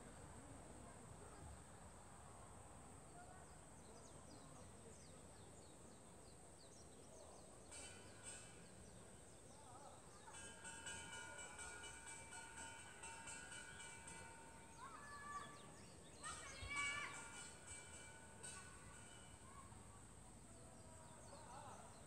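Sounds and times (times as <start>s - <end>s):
faint distant music: 0.0s - 22.0s.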